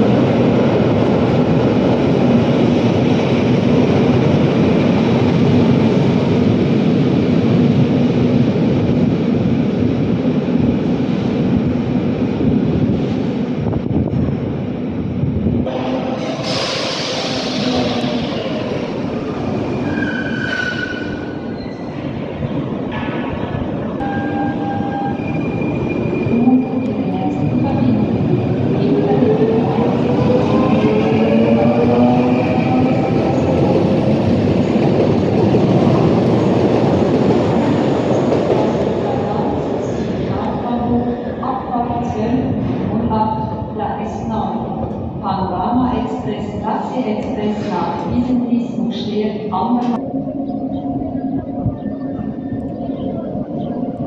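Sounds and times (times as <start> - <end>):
train wheels rumbling on rails: 0.0 - 54.0
high wheel squeals: 19.8 - 21.9.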